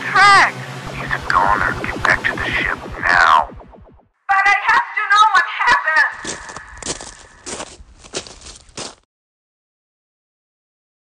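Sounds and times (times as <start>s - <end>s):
warbling voice-like sound effect: 0.0s - 4.0s
footstep-like crunches: 6.1s - 9.0s.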